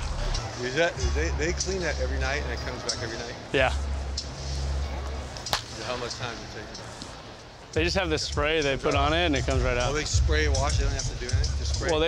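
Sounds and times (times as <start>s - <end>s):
faint voices: 0.0s - 12.0s
sharp crack: 5.3s - 6.2s
steady low rumble: 7.8s - 12.0s.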